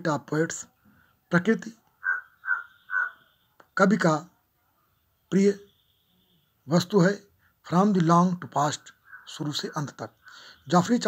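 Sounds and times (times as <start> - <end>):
bird calling: 1.9 - 3.6, 8.6 - 10.8.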